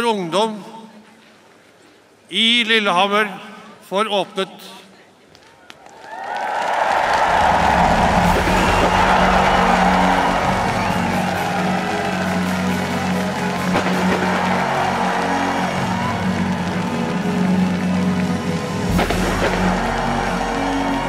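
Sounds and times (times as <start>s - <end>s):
crowd cheering and applauding: 5.7s - 21.0s.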